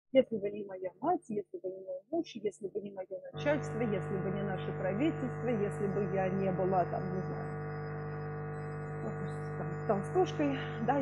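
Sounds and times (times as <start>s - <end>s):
electrical mains hum: 2.7s - 11.0s.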